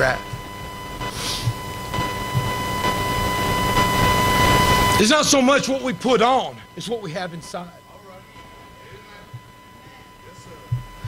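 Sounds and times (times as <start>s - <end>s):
steady high-pitched tone: 0.0s - 11.0s.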